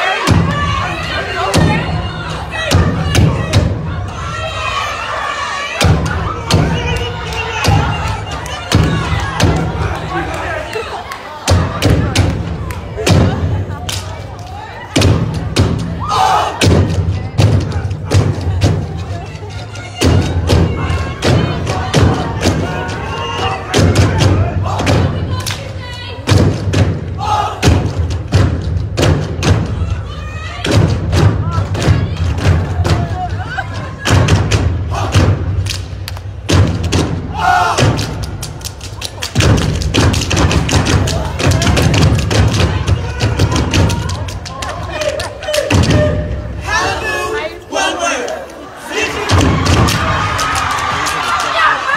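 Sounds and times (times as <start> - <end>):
stomping and clapping: 5.8 - 16.0, 23.7 - 29.6, 34.0 - 46.3, 48.2 - 51.9.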